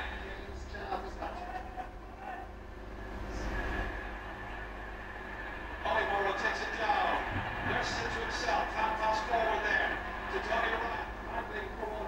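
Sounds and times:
low room hum: 0:00.0 - 0:12.0
thin high whine: 0:01.4 - 0:12.0.

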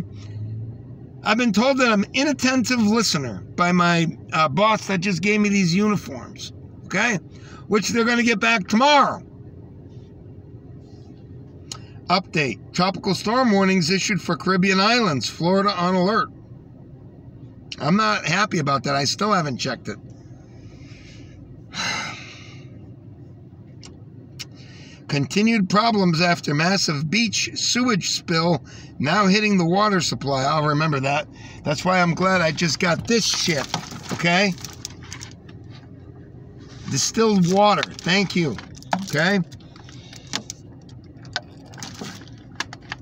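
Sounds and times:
low steady hum: 0:00.0 - 0:43.0
man breathing in: 0:24.5 - 0:25.1, 0:28.6 - 0:29.0, 0:31.3 - 0:31.6.

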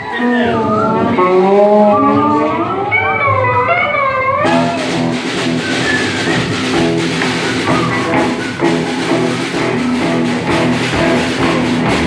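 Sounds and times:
live rock band playing: 0:00.5 - 0:12.0.

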